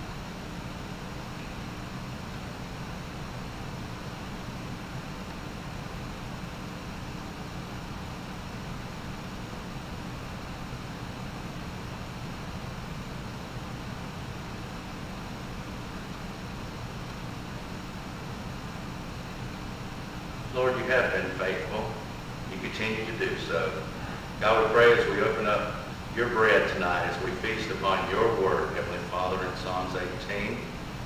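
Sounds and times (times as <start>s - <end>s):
low hum: 0.0s - 31.0s
room tone hiss: 0.0s - 31.0s.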